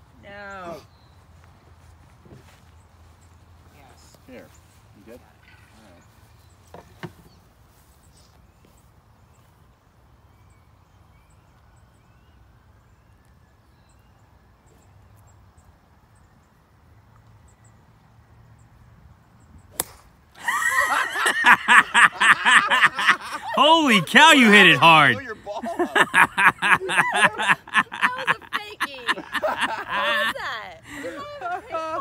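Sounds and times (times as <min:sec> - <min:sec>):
prank golf ball bursting crack: 0:19.7 - 0:20.1
loud laughing: 0:20.4 - 0:32.0.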